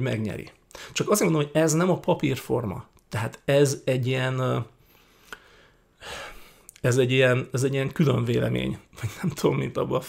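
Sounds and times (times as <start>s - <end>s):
man breathing in through mouth: 4.8s - 6.7s.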